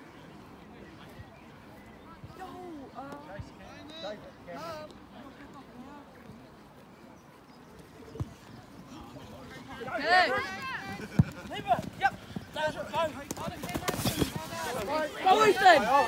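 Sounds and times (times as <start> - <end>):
players shouting: 9.0 - 16.0
thumps of running and tackling: 10.4 - 15.9.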